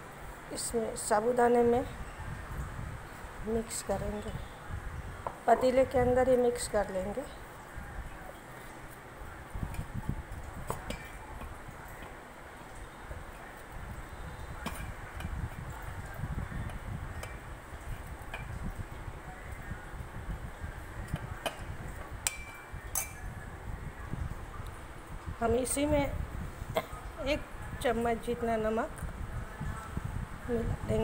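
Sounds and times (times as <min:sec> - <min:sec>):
spoon clinking and scraping pot: 0:10.7 - 0:12.2, 0:21.4 - 0:23.3.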